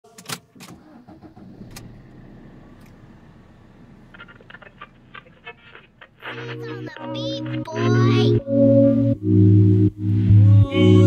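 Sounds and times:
car engine starting and idling: 0.1s - 7.7s
sharp clicks: 4.1s - 6.4s.

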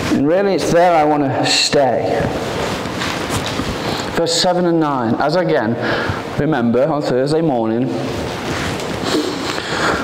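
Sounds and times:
rubbing against microphone: 0.0s - 4.4s, 7.9s - 10.0s
person speaking: 0.0s - 10.0s.

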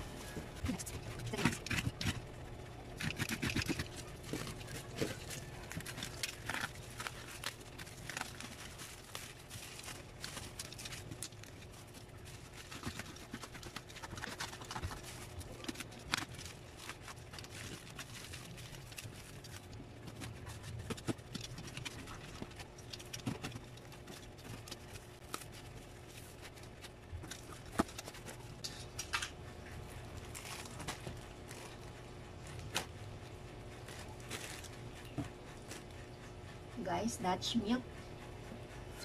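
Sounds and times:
bubble wrap crinkling: 0.0s - 36.4s.

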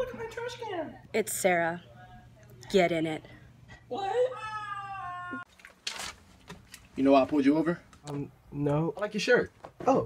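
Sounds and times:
person wailing what: 3.9s - 5.5s.

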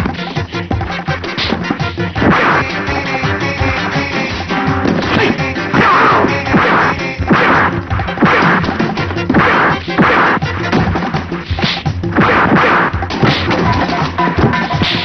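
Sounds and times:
background music: 0.0s - 15.0s
punch whacks and crashes: 1.4s - 2.8s, 4.8s - 15.0s.

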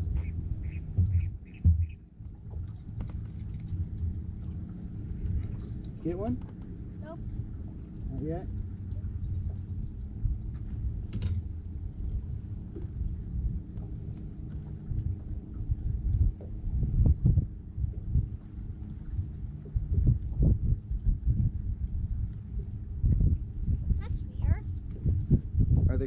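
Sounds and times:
steady low hum: 0.0s - 26.0s
wind buffeting microphone: 0.0s - 26.0s.

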